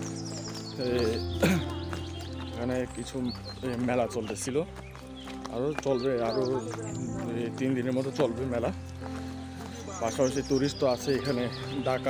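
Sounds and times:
background music with held tones: 0.0s - 12.0s
man talking: 0.8s - 1.3s.

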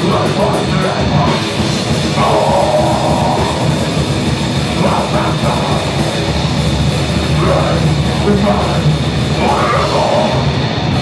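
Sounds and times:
drum kit: 0.0s - 11.0s
electric guitar: 0.0s - 11.0s
rock band playing live: 0.0s - 11.0s.

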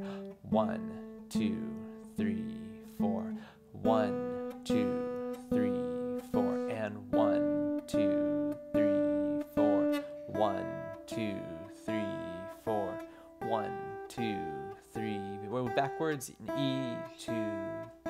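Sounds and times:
acoustic guitar picking single notes: 0.0s - 18.0s
man counting beats: 0.0s - 18.0s.

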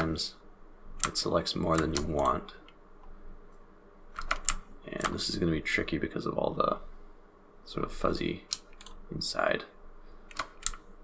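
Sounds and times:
computer input clicks: 4.2s - 5.2s, 10.3s - 10.8s.

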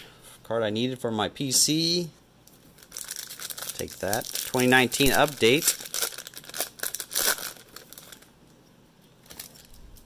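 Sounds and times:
foil wrapper crinkling and tearing: 2.7s - 8.3s, 9.2s - 10.0s.

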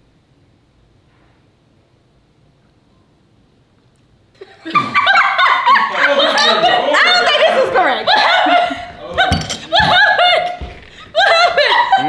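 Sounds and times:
women laughing: 4.4s - 12.0s.

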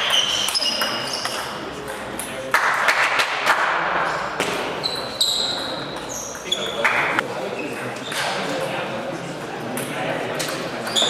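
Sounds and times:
shoes squeaking on floor: 0.0s - 1.6s, 4.6s - 8.4s, 10.8s - 11.0s.

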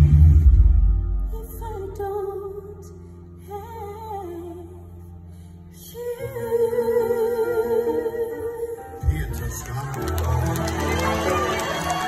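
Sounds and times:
soft band accompaniment: 0.0s - 12.0s.

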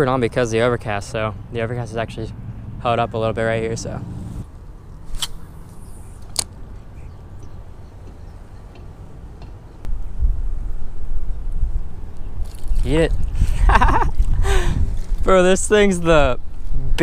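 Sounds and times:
wind buffeting microphone: 9.8s - 17.0s.

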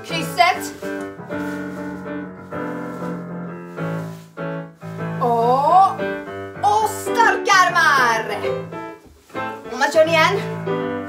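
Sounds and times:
digital piano chords: 0.0s - 11.0s.

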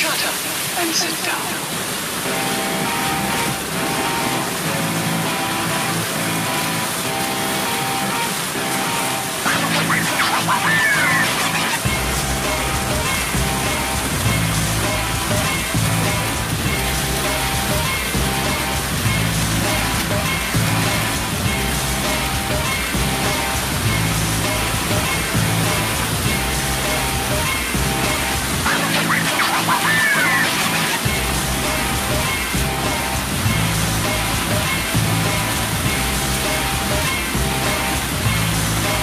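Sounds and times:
water pouring and splashing: 0.0s - 39.0s
music with repeating bass line: 2.3s - 39.0s.

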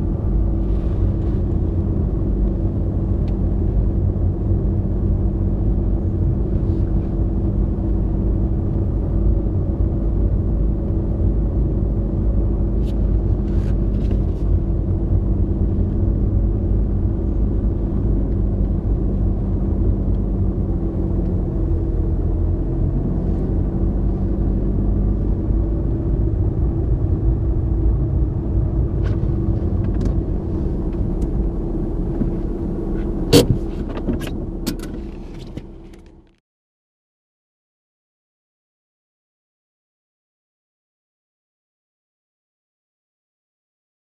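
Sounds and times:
car engine running: 0.0s - 36.4s
road and tyre rumble: 0.0s - 36.4s.

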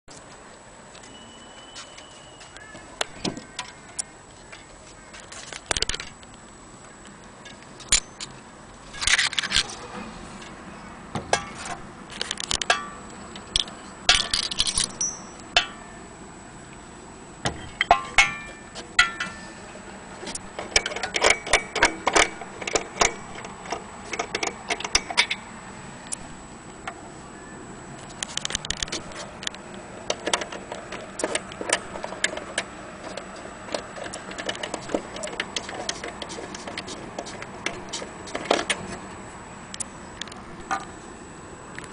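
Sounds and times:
metallic knocks with ringing: 14.1s - 16.0s, 17.5s - 19.5s.

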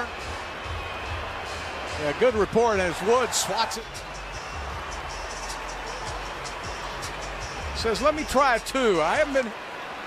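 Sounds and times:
arena crowd noise hum: 0.0s - 10.0s.

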